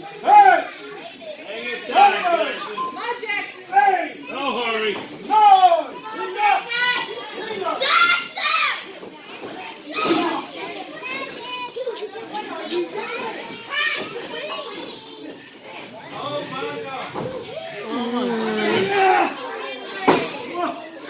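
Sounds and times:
children shouting: 0:05.3 - 0:09.0, 0:09.7 - 0:12.2, 0:12.8 - 0:21.0.

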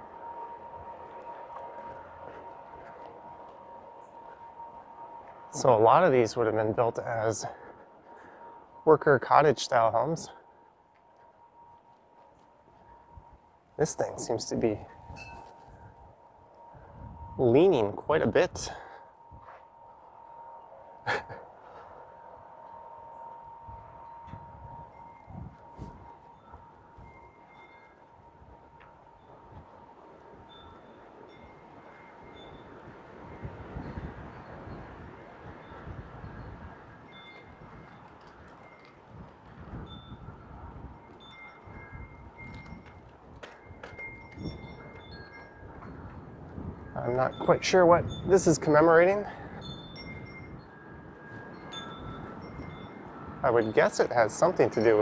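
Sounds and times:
wind chime ringing: 0:11.1 - 0:16.0, 0:16.8 - 0:55.0.

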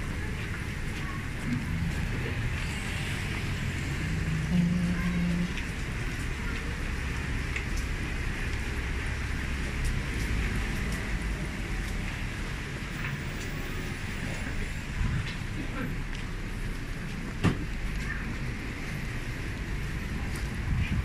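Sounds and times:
engines rumbling: 0:00.0 - 0:21.0
tyres hissing on wet road: 0:00.0 - 0:21.0.

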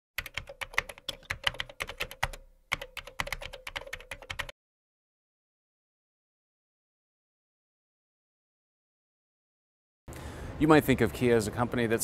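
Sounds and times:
computer keyboard typing: 0:00.2 - 0:04.5.

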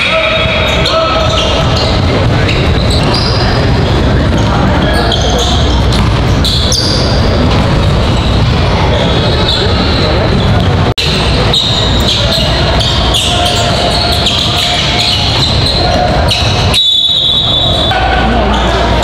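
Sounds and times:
sneaker squeaks: 0:00.0 - 0:18.8
voices echoing: 0:00.0 - 0:19.0.

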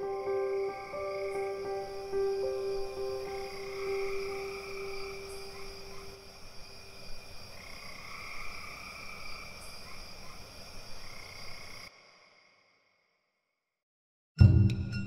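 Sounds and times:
frogs and insects chirping: 0:00.0 - 0:13.4.

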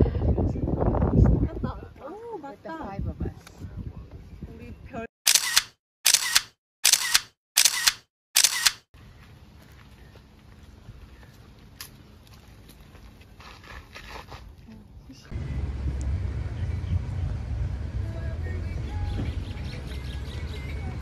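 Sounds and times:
camera shutter clicking: 0:05.3 - 0:08.8
quiet outdoor background noise: 0:07.7 - 0:21.0.

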